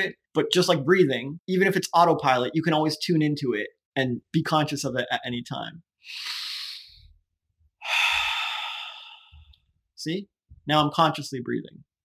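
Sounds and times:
man breathing in: 6.0s - 7.1s, 7.8s - 9.7s
man breathing out: 6.0s - 7.1s, 7.8s - 9.6s.

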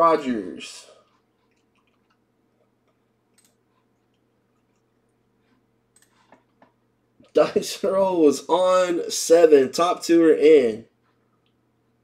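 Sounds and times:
faint steady hum: 0.0s - 12.0s
computer mouse clicks: 2.8s - 4.9s, 5.9s - 6.8s.

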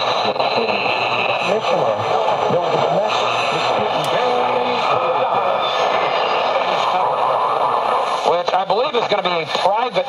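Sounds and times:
hissy radio static: 0.0s - 10.0s
announcer's voice from radio: 0.2s - 5.5s.

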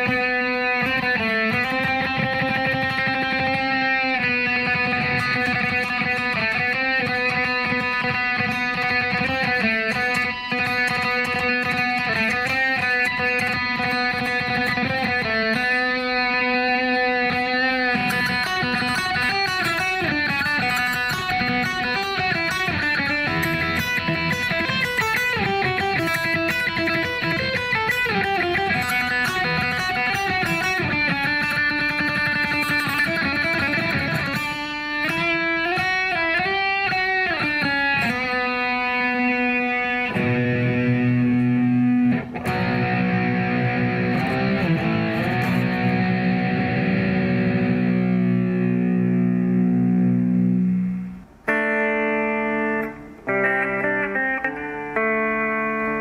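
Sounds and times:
electric guitar through amplifier: 0.0s - 56.0s.

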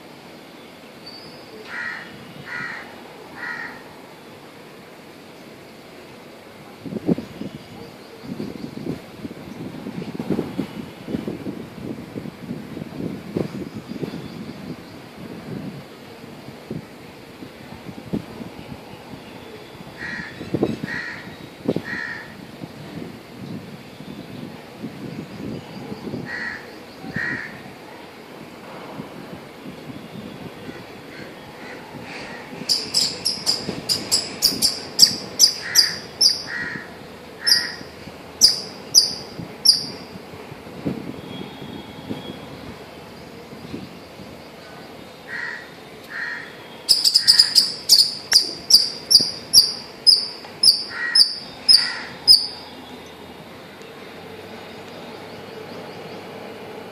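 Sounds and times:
short bird calls: 30.7s - 40.1s, 45.3s - 52.9s
sharp high repeated chirps: 32.7s - 36.5s, 37.5s - 40.1s, 46.9s - 52.6s.

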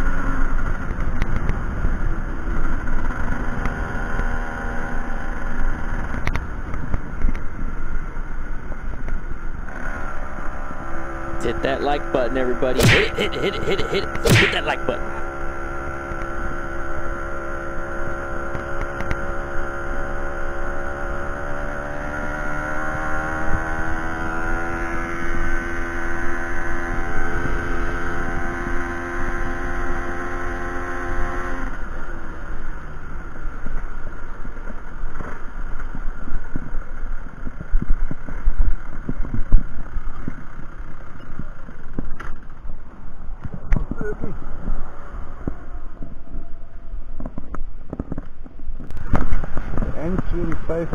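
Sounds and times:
small two-stroke moped engine: 0.0s - 12.7s
road rumble: 0.0s - 22.8s, 31.8s - 50.9s.

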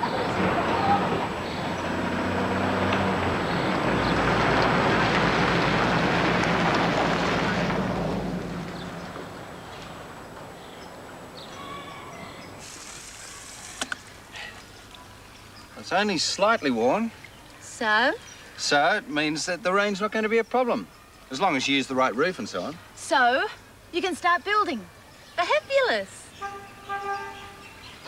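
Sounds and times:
truck engine running: 0.0s - 10.6s
tyres on gravel: 0.0s - 17.4s
garden hose spraying water: 12.5s - 18.0s.

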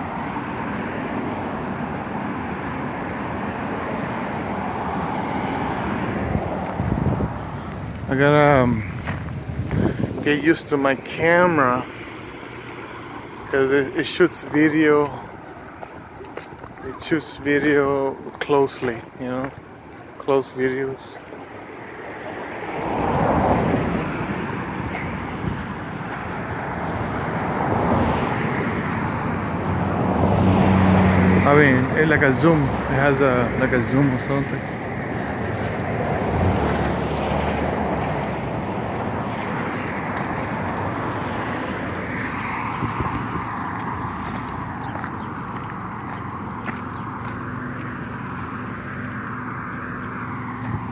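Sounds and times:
footsteps on concrete: 0.0s - 30.9s, 34.0s - 50.9s
road traffic: 0.0s - 50.9s.

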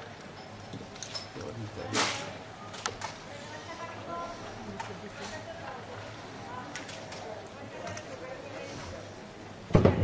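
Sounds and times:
indistinct background voices: 1.4s - 10.0s.

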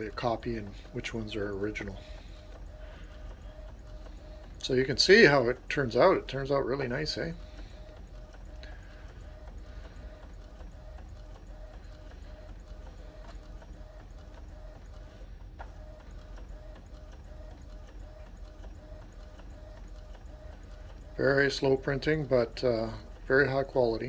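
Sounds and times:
inkjet printer whirring: 0.0s - 24.0s.

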